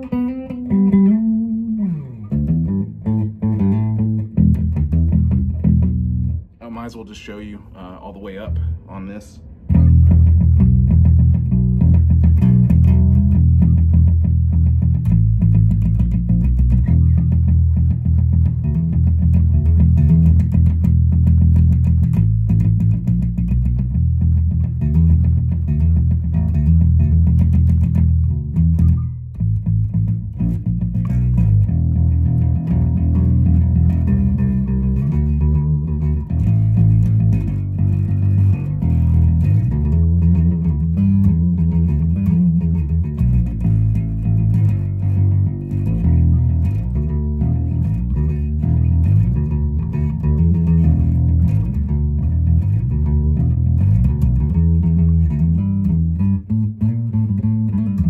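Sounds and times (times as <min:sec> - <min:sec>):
electric bass fingerstyle: 0:00.0 - 0:58.0.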